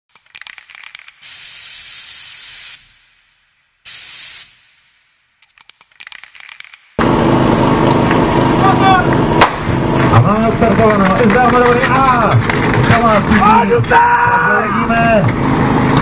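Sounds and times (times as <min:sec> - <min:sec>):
crackling clicks: 0:00.1 - 0:01.3, 0:04.8 - 0:07.0.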